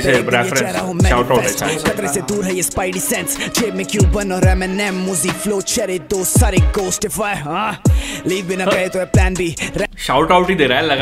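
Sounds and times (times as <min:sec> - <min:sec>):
man rapping over a beat: 0:00.0 - 0:11.0
deep sliding bass notes: 0:09.2 - 0:11.0.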